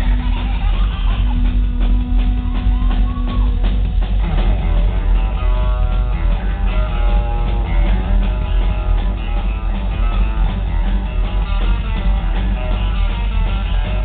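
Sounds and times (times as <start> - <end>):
electric guitar lead lines: 0.0 - 14.0
rockabilly band playing: 0.0 - 14.0.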